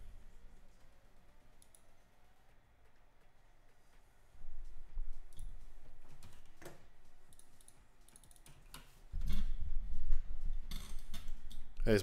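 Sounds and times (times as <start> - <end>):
computer keyboard typing: 7.3 - 8.9.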